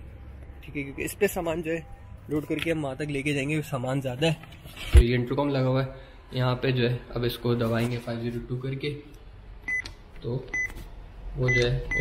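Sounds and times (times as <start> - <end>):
intercom keypad beeps: 11.5 - 12.0.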